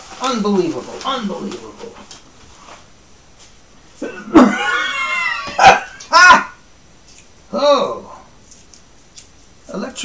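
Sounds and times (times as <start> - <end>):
man coughing: 4.0 - 4.7.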